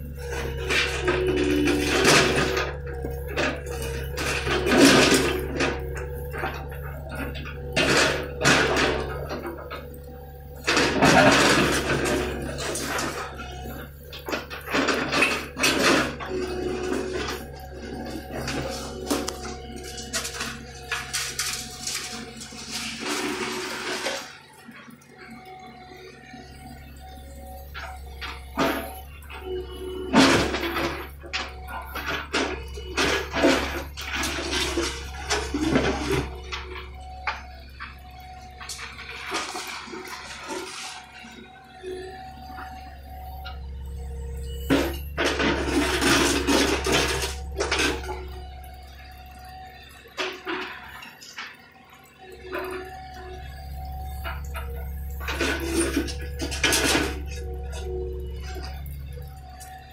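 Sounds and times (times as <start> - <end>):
concrete rubble grinding and clattering: 0.0 - 27.0, 27.7 - 41.7, 42.3 - 59.9
excavator engine and hydraulic hum: 0.0 - 59.9.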